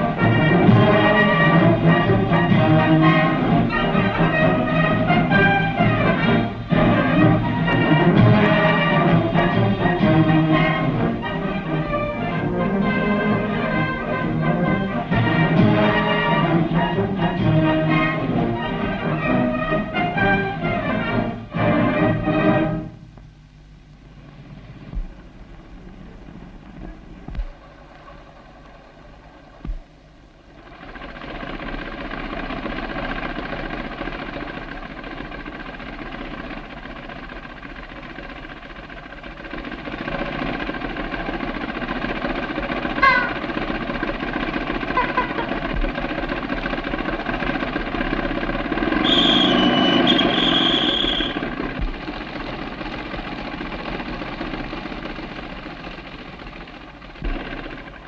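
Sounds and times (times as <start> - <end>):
crowd hubbub of voices: 44.8 - 46.6
shrill whistle: 49.0 - 51.5.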